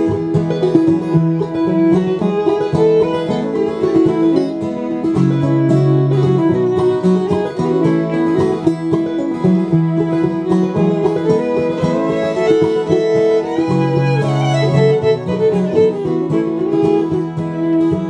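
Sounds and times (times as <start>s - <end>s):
banjo rolls: 0.0s - 18.0s
fiddle: 0.0s - 18.0s
strummed acoustic guitar: 0.0s - 18.0s.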